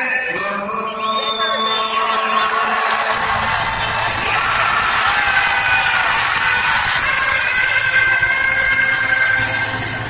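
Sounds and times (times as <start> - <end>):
crowd noise: 0.0 - 10.0.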